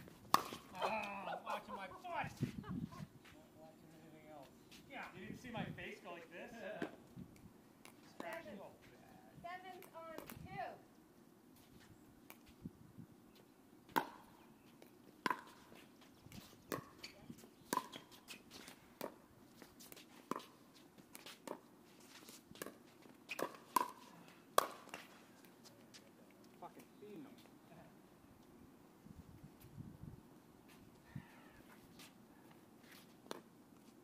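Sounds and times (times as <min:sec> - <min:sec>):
paddles hitting plastic ball: 0:00.3 - 0:01.2, 0:22.6 - 0:25.1
voices: 0:00.7 - 0:06.9.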